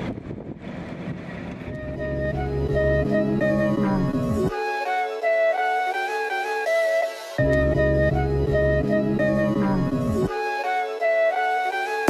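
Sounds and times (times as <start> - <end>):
wind on microphone: 0.0 - 2.0
traffic rumble: 0.0 - 4.5
music: 1.7 - 12.0.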